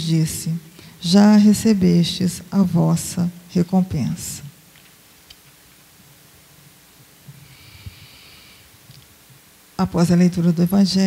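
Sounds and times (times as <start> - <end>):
low room hum: 0.0 - 11.0
soft breath near microphone: 7.3 - 8.8.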